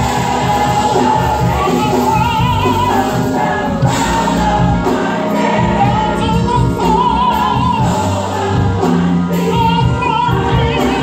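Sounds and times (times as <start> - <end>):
gospel choir singing: 0.0 - 11.0
instrumental accompaniment: 0.0 - 11.0.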